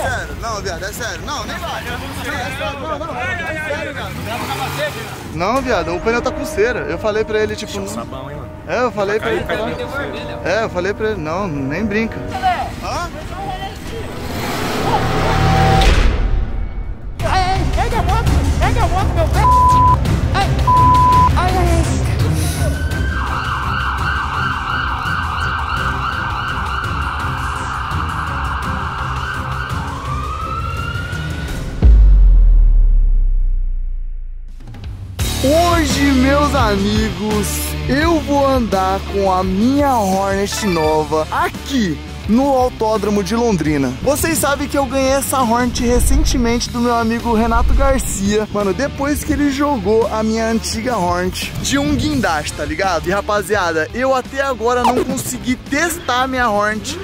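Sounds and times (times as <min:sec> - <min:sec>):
men talking and calling out: 0:00.0 - 0:16.3, 0:17.1 - 0:24.8, 0:35.2 - 0:57.0
emergency vehicle siren: 0:22.3 - 0:31.8.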